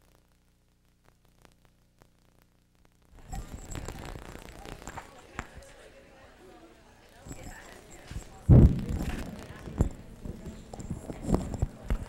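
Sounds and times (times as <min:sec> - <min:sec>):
murmur of voices: 0:03.2 - 0:12.0.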